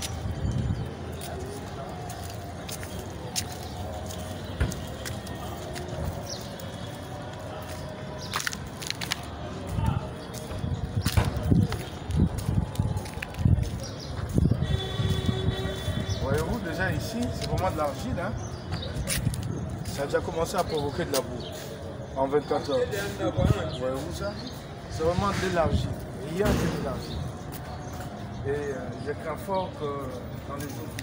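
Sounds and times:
low rumbling knocks on microphone: 0:11.0 - 0:11.7.

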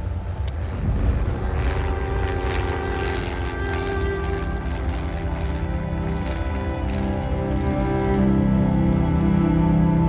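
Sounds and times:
light aircraft engine droning: 0:00.0 - 0:10.0
steady sustained tones: 0:00.0 - 0:10.0.

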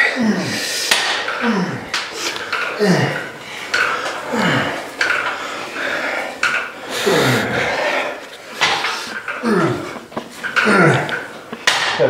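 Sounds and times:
weight stack clanking: 0:00.0 - 0:12.0.

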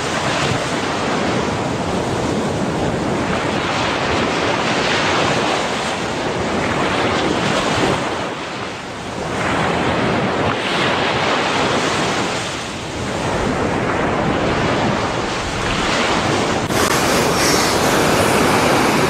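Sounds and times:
ocean surf: 0:00.0 - 0:19.0
wind buffeting microphone: 0:00.0 - 0:19.0.

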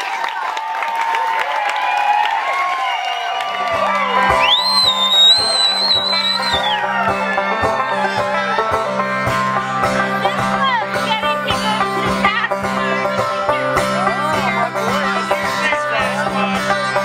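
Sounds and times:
crowd noise: 0:00.0 - 0:17.0
banjo playing: 0:03.7 - 0:17.0.

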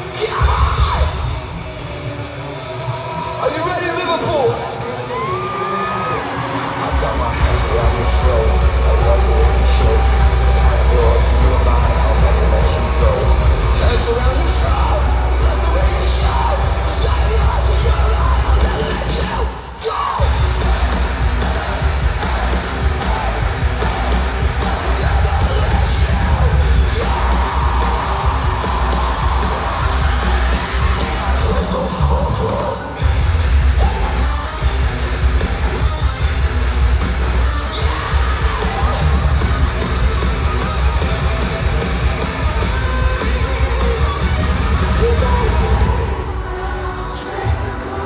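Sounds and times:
heavy rock band playing live: 0:00.0 - 0:48.0.

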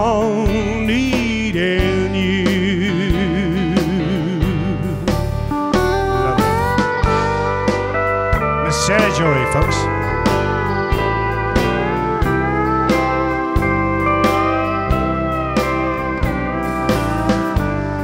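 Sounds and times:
country band playing: 0:00.0 - 0:18.0
pedal steel guitar: 0:00.0 - 0:18.0.

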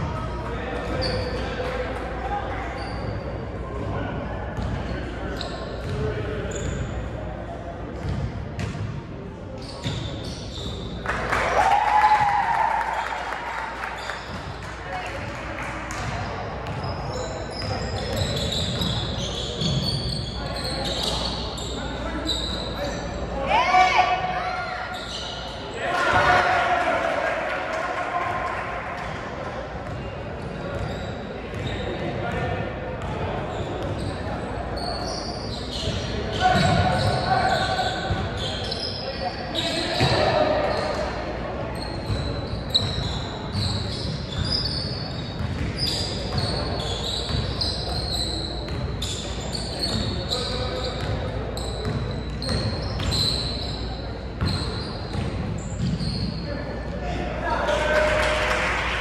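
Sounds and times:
shoes squeaking on floor: 0:00.9 - 0:01.5, 0:02.7 - 0:03.5, 0:05.3 - 0:07.1, 0:09.6 - 0:11.0, 0:16.6 - 0:23.3, 0:24.7 - 0:25.8, 0:30.4 - 0:32.1, 0:33.5 - 0:41.1, 0:41.7 - 0:56.6.

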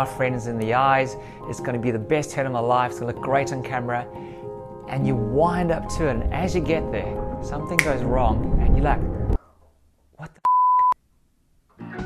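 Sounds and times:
music: 0:00.0 - 0:09.4, 0:11.7 - 0:12.0
censor bleep: 0:10.4 - 0:11.0.

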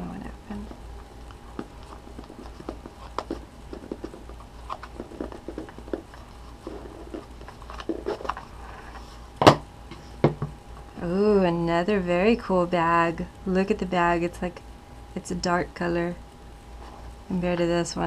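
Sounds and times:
hands handling a small box: 0:01.6 - 0:09.2.

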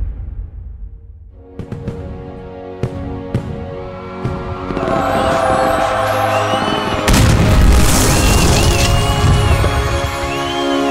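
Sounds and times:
firework boom with rumble and crackle: 0:00.0 - 0:02.1, 0:07.1 - 0:09.9
background music: 0:01.3 - 0:10.9
faint high whistling glides: 0:04.8 - 0:07.1.

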